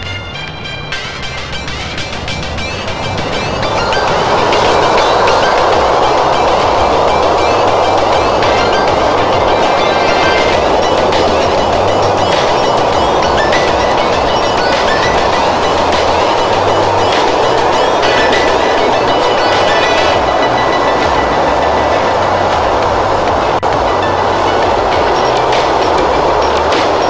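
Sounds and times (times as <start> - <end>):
freight train rumbling and rattling: 0.0 - 27.0.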